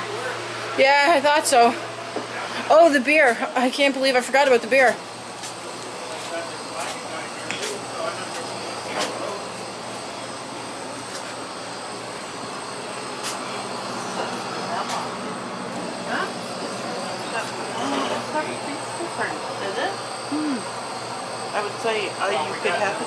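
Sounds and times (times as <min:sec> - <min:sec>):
steady hum and hiss: 0:00.0 - 0:23.0
faint voices: 0:04.3 - 0:20.8.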